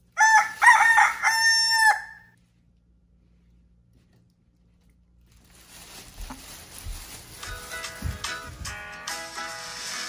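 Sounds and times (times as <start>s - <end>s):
rooster crowing: 0.2s - 2.4s.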